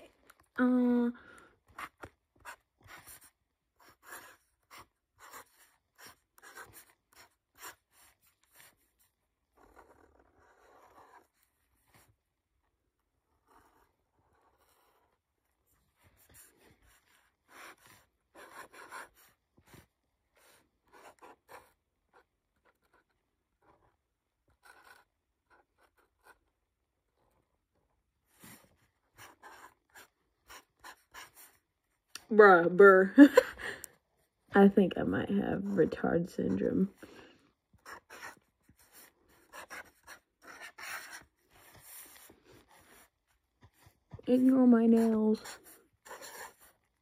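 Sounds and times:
marker scratching on paper: 1.6 - 12.2, 13.3 - 23.9, 24.5 - 26.5, 28.2 - 31.7, 37.7 - 47.0.

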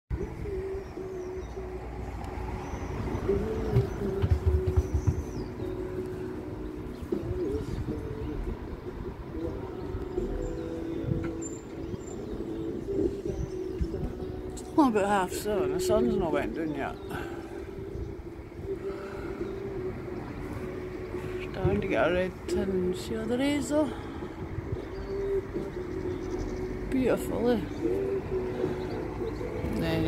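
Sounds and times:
small birds chirping: 0.1 - 30.0
low bumps: 0.2 - 6.1.

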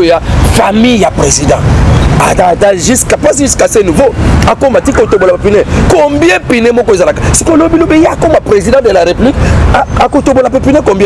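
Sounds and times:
man talking animatedly: 0.0 - 11.0.

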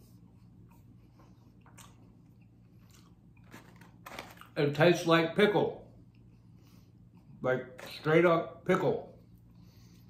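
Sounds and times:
faint chewing: 0.1 - 4.6.

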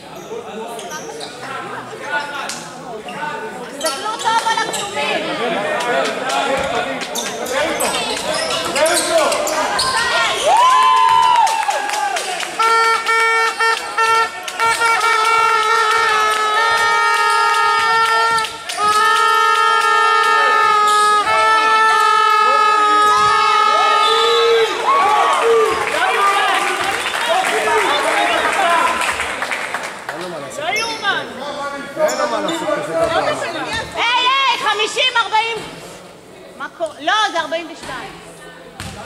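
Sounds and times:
people shouting and chattering: 0.0 - 39.0
horn blasts: 12.5 - 23.3.

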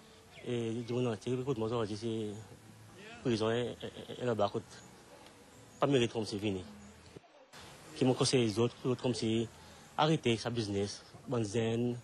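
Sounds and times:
low background noise: 0.0 - 12.0
man speaking: 0.4 - 4.8, 5.8 - 6.8, 7.8 - 12.0.

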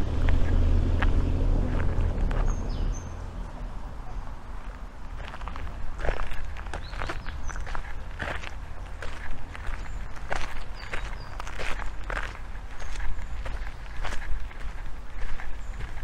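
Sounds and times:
footsteps on a path: 0.0 - 3.2, 4.4 - 16.0.

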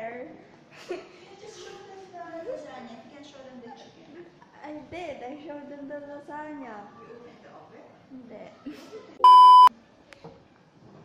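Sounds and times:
censor bleep: 9.2 - 9.7.

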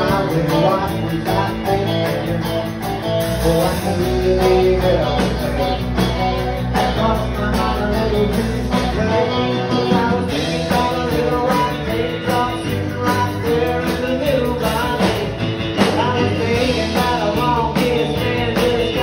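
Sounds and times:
drum kit beat: 0.0 - 19.0
electric and acoustic guitars: 0.0 - 19.0.

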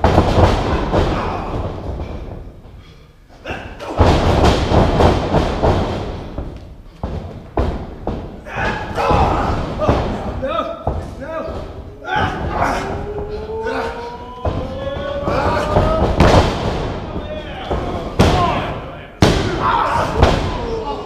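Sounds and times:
bodies thudding on wrestling mat: 0.0 - 2.6, 3.8 - 20.6
voices shouting: 8.5 - 10.0, 11.3 - 21.0.

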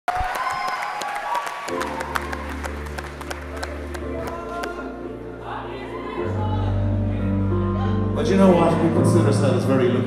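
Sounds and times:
audience applause: 0.1 - 4.9.

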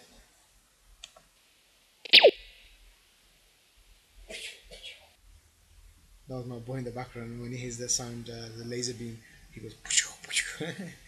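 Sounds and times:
laser sweep sound effect: 2.1 - 2.4
short hiss: 2.1 - 2.7.

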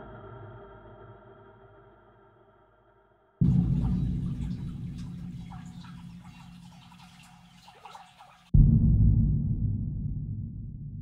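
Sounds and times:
deep rumble: 3.4 - 6.8, 8.5 - 11.0
water trickling in ditch: 3.4 - 8.5.

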